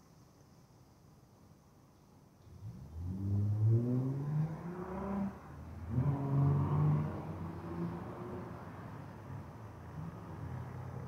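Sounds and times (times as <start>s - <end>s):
vehicle engine accelerating: 2.5s - 11.0s.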